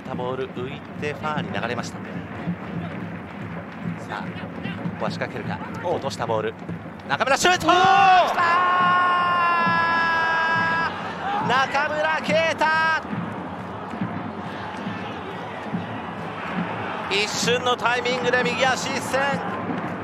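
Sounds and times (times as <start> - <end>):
stadium crowd noise: 0.0 - 20.0
commentator shouting excitedly: 7.2 - 13.0, 17.1 - 19.5.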